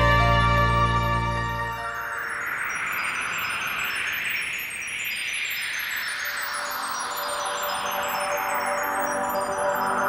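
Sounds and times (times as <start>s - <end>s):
shimmering wind chime sound effect: 0.0s - 10.0s.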